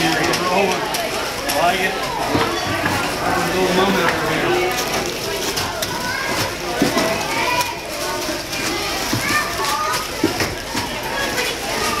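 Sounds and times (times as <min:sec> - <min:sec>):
many people chatting: 0:00.0 - 0:12.0.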